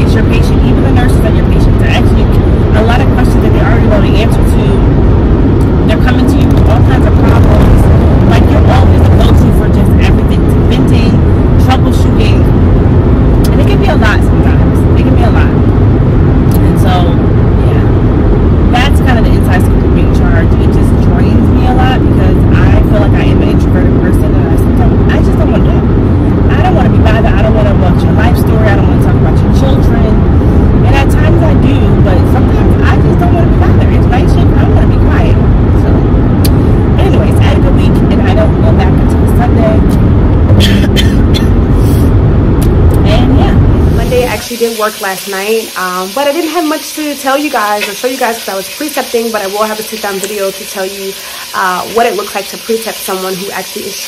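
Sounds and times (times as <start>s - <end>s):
car cabin road and engine noise: 0.0s - 45.2s.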